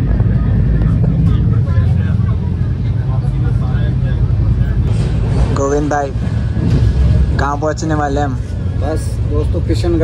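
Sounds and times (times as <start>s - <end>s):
faint passenger voices: 0.0s - 10.0s
train rumbling from inside: 0.0s - 10.0s.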